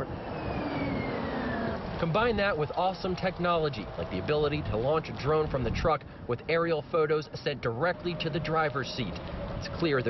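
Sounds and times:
tyre and road noise: 0.0s - 10.0s.

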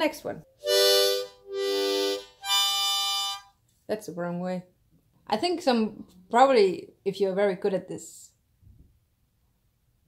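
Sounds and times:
harmonica chords: 0.4s - 3.6s.

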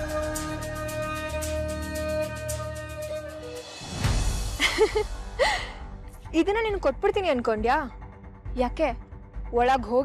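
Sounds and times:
dramatic background music: 0.0s - 10.0s
woman gasping: 5.4s - 5.9s.

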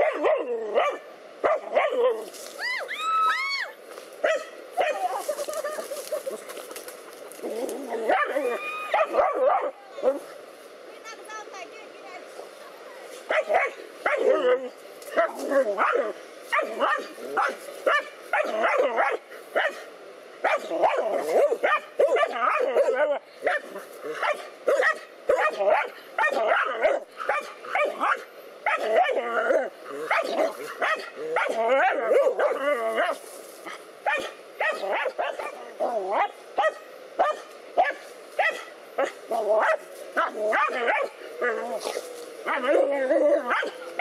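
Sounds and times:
dogs barking: 0.0s - 2.2s, 4.2s - 6.3s, 7.9s - 10.2s, 13.3s - 29.3s, 29.9s - 44.0s.

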